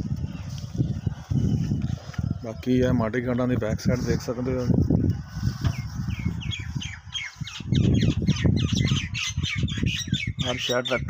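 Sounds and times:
birds squawking chirps: 5.3 - 11.0.

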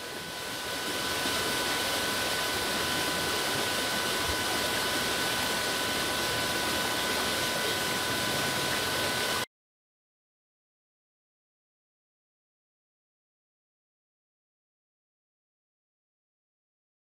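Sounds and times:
stream rushing over stones: 0.0 - 9.5.

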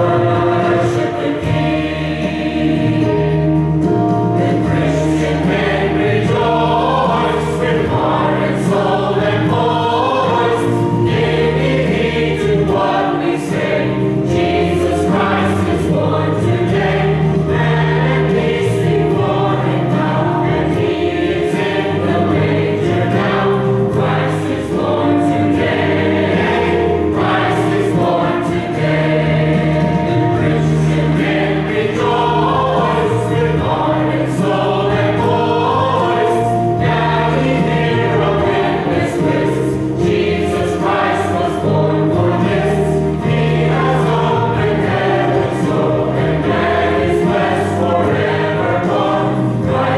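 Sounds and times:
mixed choir singing in parts: 0.0 - 49.9.

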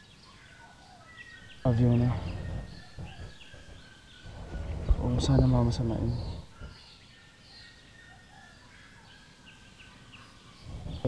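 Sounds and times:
low steady background hiss: 0.0 - 11.0.

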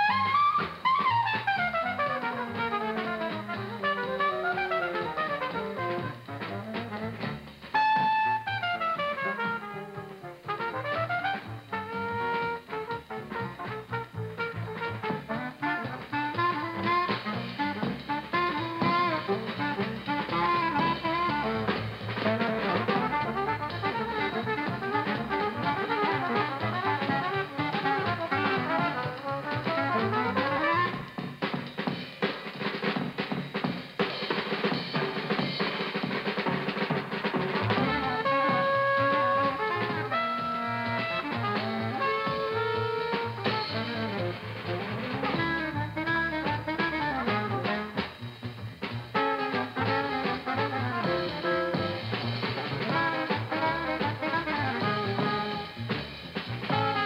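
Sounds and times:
saxophone line: 0.0 - 31.4, 37.6 - 48.2, 49.1 - 56.0, 56.7 - 57.0
cool jazz combo playing: 0.0 - 57.0
drum kit passage: 0.0 - 57.0
long held horn notes: 7.8 - 31.1, 37.7 - 47.8.

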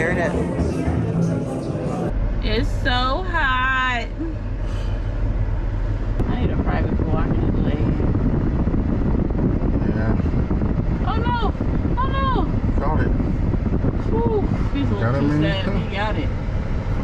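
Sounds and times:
car road and engine rumble: 0.0 - 17.0.

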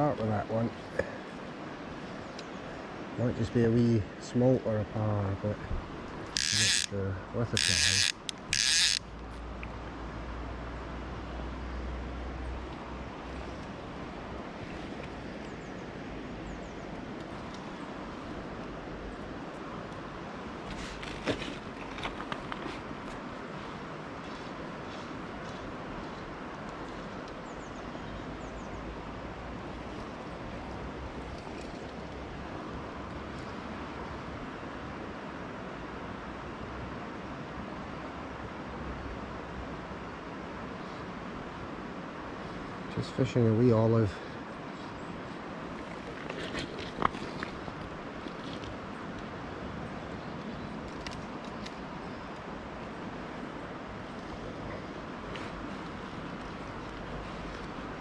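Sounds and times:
flowing water: 40.6 - 58.0.

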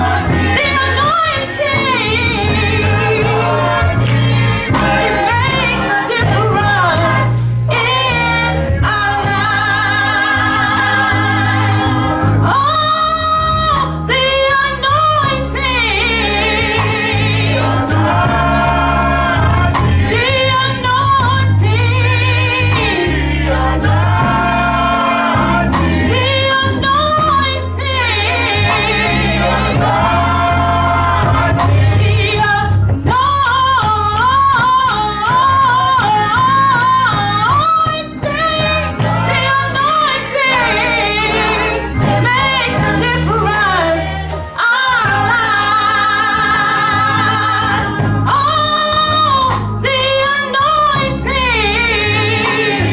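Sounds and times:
bass notes: 0.0 - 52.9
gospel choir singing: 0.0 - 52.9
woman singing with vibrato: 0.0 - 52.9.

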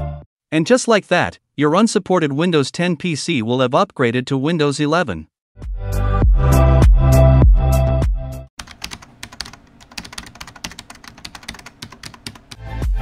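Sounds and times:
keyboard typing clicks: 8.6 - 12.7.

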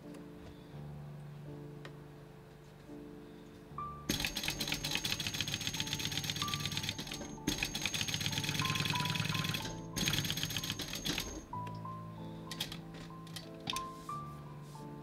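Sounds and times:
soft background music: 0.0 - 15.0
sewing machine stitching: 4.1 - 11.5.

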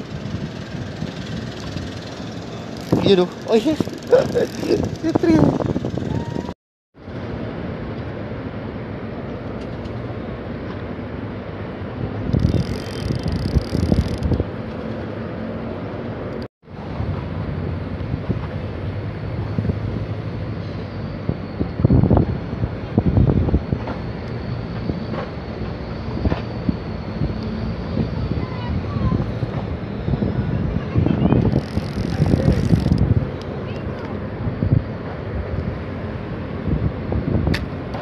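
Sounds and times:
wind rumbling on microphone: 0.0 - 38.0.

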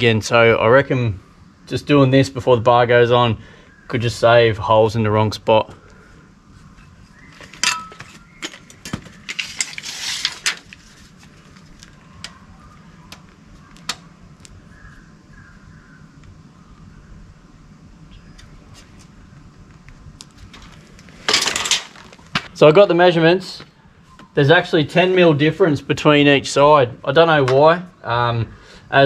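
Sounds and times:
tape measure rattle: 9.2 - 10.8.

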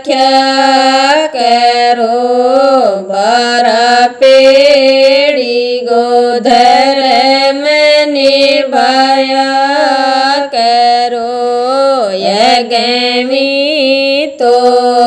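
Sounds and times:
woman singing devotional song: 0.0 - 15.0.

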